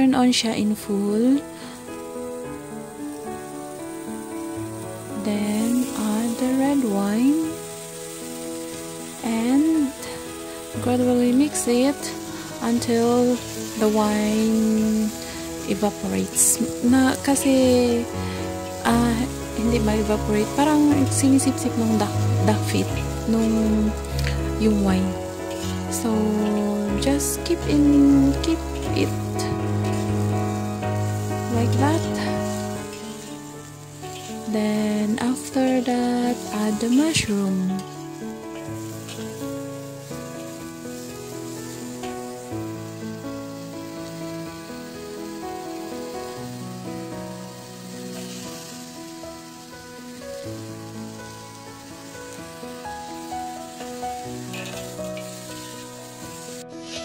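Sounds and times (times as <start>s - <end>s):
food sizzling in a wok: 0.0s - 57.0s
background music with singing: 4.7s - 33.6s
metal spatula stirring: 11.8s - 17.6s, 18.4s - 34.6s, 35.4s - 39.7s, 48.1s - 48.8s, 53.7s - 55.9s.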